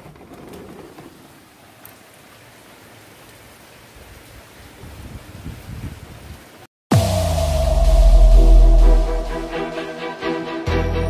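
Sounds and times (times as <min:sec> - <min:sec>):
low rumble: 0:06.9 - 0:10.3.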